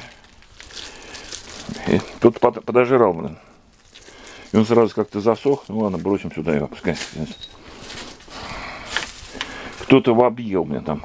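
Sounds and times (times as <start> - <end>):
leaves rustling being handled: 0.0 - 10.2.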